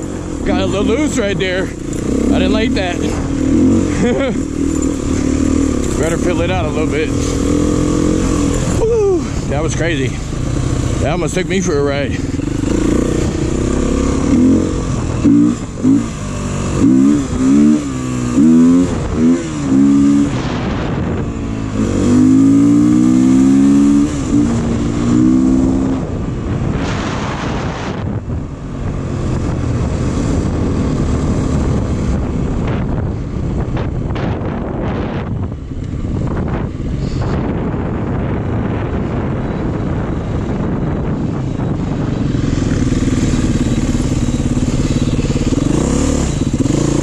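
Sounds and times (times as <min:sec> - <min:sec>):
dirt bike engine running: 0:00.0 - 0:47.0
wind on microphone: 0:00.0 - 0:47.0.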